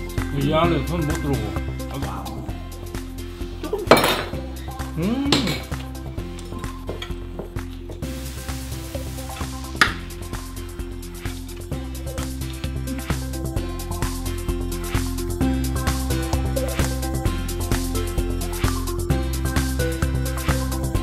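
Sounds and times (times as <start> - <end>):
background music with steady beat: 0.0 - 21.0
utensils clinking against dishes: 3.8 - 4.4, 5.3 - 8.0.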